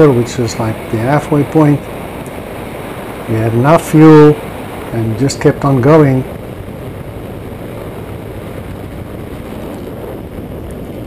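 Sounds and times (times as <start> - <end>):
small aircraft engine droning: 0.0 - 11.0
wind buffeting microphone: 0.0 - 11.0.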